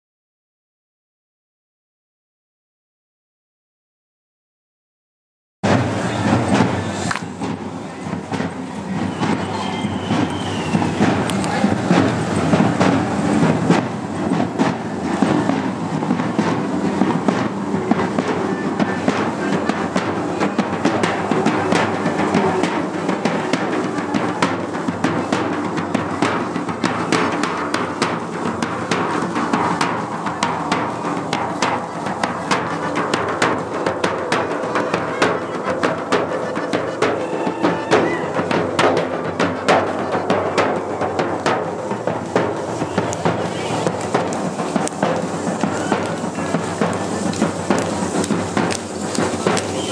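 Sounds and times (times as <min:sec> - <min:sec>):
bass drum: 0:05.6 - 0:49.9
snare drum: 0:05.6 - 0:49.9.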